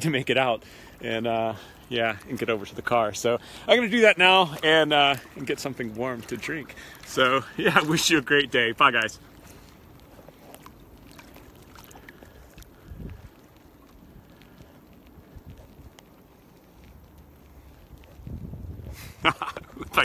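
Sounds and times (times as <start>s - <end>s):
person laughing: 19.0s - 20.0s.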